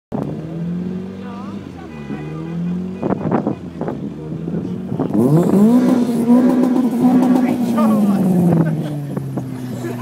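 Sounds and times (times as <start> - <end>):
car engine running: 0.1 - 10.0
voices: 1.0 - 10.0.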